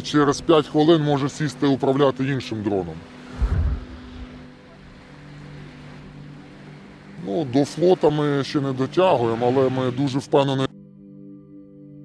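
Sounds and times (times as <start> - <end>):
boat motor humming: 0.0 - 10.2
heavy low rumble: 3.3 - 4.6.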